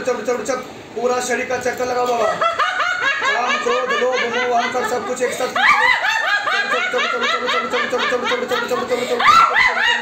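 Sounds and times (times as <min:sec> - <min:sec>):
woman laughing hard: 0:02.3 - 0:10.0.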